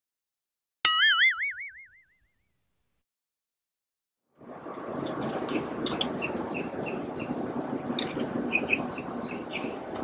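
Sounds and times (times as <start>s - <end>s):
cartoon boing twang: 0.9s - 2.2s.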